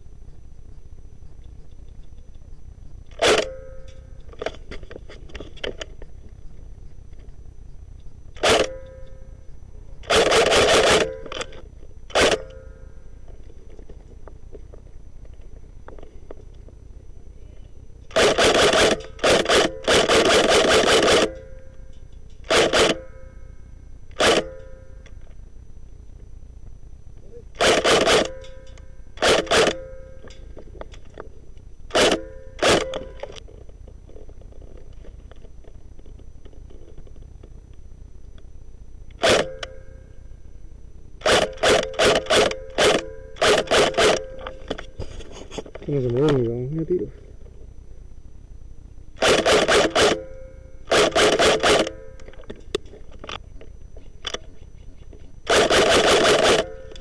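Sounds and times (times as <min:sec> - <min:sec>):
airsoft rifle firing bursts: 0:03.1 - 0:03.6, 0:08.4 - 0:08.8, 0:10.0 - 0:12.6, 0:18.1 - 0:21.5, 0:22.4 - 0:23.1, 0:24.1 - 0:24.6, 0:27.6 - 0:30.0, 0:31.9 - 0:33.3, 0:39.2 - 0:39.7, 0:41.2 - 0:44.8, 0:49.2 - 0:50.3, 0:50.9 - 0:52.1, 0:55.5 - 0:57.0.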